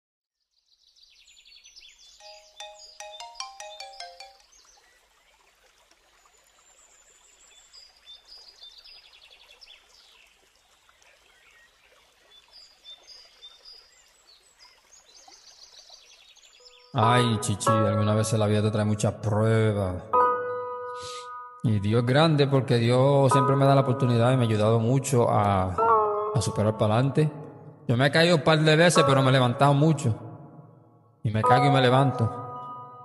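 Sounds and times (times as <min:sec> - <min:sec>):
birds chirping and trilling: 0:00.6 - 0:05.4, 0:10.9 - 0:30.4, 0:31.3 - 0:33.0
chime-like struck notes: 0:02.2 - 0:04.4, 0:20.2 - 0:21.7, 0:31.4 - 0:33.0.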